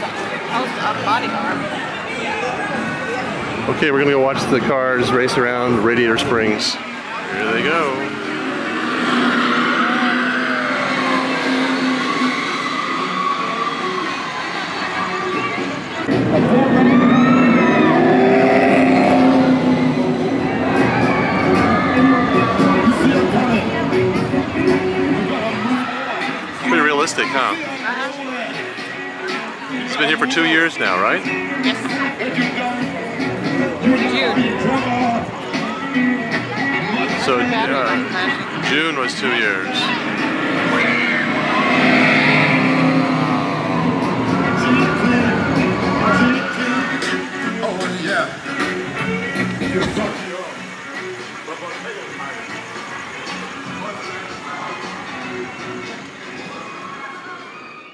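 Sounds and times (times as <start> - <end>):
race car engine sound effects: 7.2 - 25.7, 38.6 - 48.7
ride vehicles speeding past: 7.8 - 25.1, 39.7 - 47.2.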